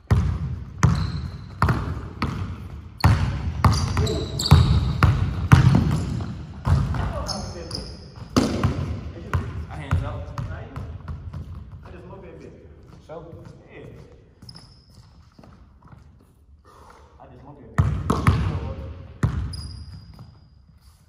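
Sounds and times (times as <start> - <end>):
basketball bouncing on hardwood floor: 0.0 - 7.4, 8.1 - 12.1, 17.8 - 20.4
sneakers squeaking on floor: 0.0 - 16.5, 17.8 - 21.0.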